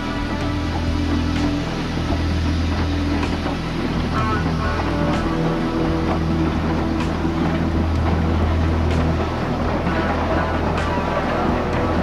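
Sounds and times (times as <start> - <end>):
steady noise with held tones: 0.0 - 12.0
steam locomotive exhaust beats: 0.0 - 12.0.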